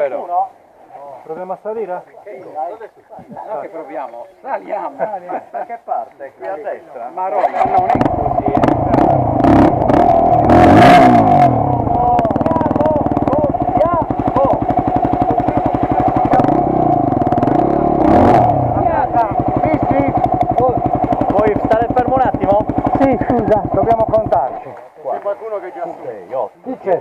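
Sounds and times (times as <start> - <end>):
dirt bike engines idling: 1.3 - 25.9
dirt bike engine revving: 7.4 - 24.6.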